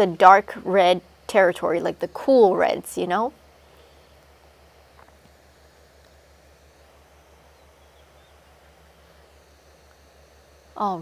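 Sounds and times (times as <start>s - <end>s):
low hum with regular pulse: 0.0s - 11.0s
quiet hiss: 0.0s - 11.0s.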